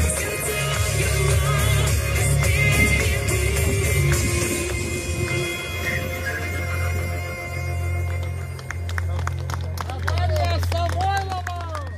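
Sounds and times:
song over outdoor speakers: 0.0s - 11.9s
steady low rumble: 2.2s - 9.6s
people clapping: 7.9s - 11.9s.

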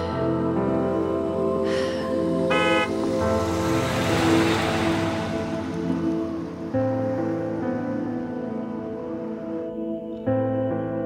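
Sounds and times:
slow sustained background music: 0.0s - 11.0s
car passing by: 1.9s - 8.4s.

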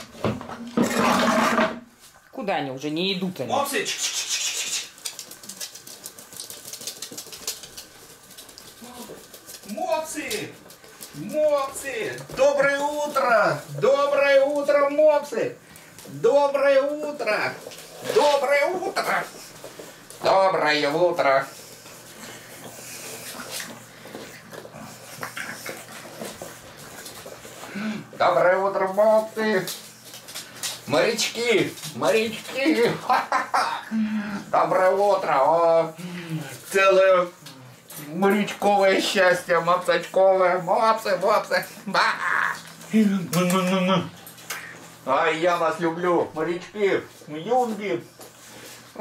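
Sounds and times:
puppies snuffling and licking: 3.4s - 33.8s, 34.4s - 49.0s
dog claws clicking on wooden floor: 4.6s - 15.0s.

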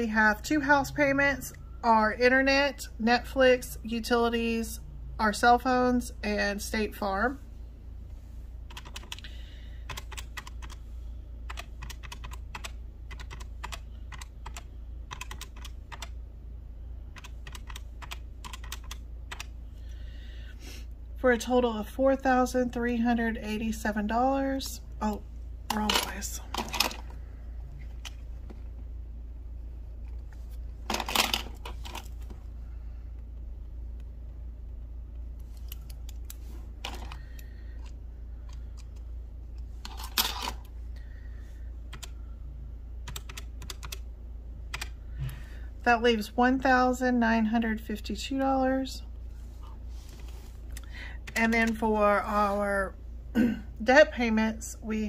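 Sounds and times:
low steady hum: 0.0s - 55.0s
calculator keys clicking: 8.7s - 9.2s, 9.9s - 10.8s, 11.5s - 16.1s, 17.1s - 19.5s, 41.9s - 42.2s, 43.0s - 44.0s.

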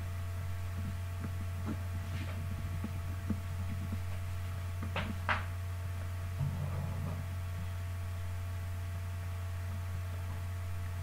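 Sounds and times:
low electrical hum: 0.0s - 11.0s.

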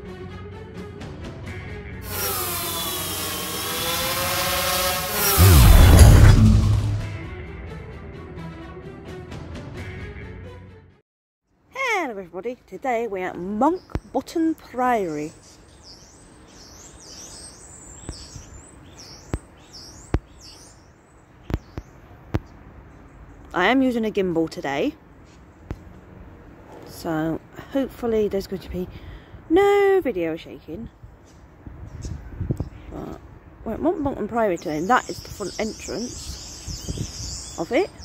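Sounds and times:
drone propellers buzzing: 2.0s - 7.3s
small songbird chirping: 13.6s - 23.7s, 34.4s - 38.0s.

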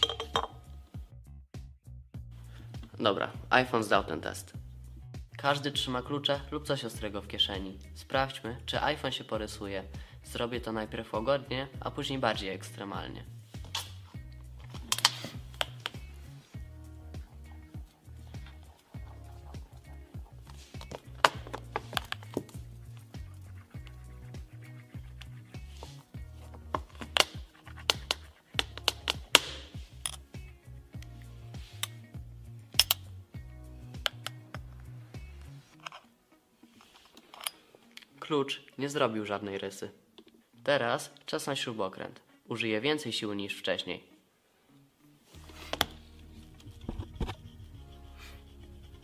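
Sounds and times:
background music: 0.0s - 49.0s
metal key scratching glass: 46.6s - 49.0s.

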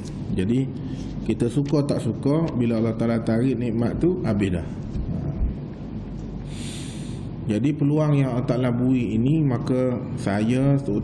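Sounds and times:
man talking: 0.3s - 5.6s, 7.4s - 11.0s
man breathing in: 6.5s - 7.3s.

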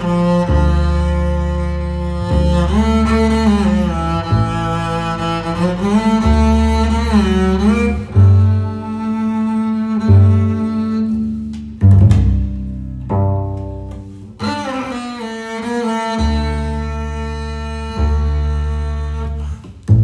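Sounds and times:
double bass notes plucked: 0.0s - 20.0s.

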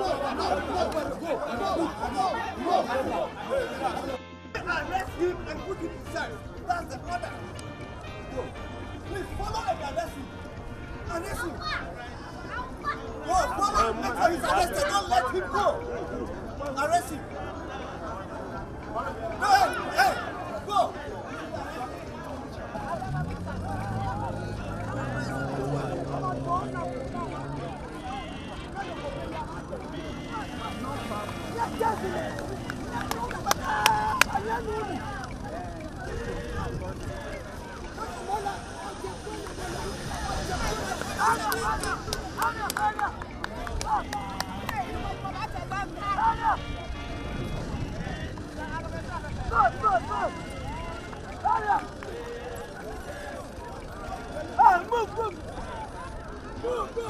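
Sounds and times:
crowd talking: 0.0s - 57.0s
vehicle engine running: 21.6s - 57.0s.

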